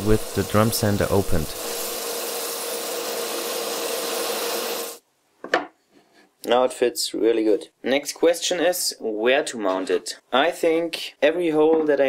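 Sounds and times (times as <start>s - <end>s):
drum sander humming: 0.0s - 5.0s.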